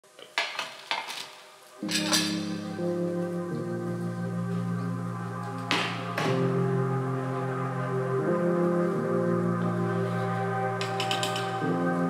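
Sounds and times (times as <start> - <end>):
sustained low chord: 1.8 - 12.0.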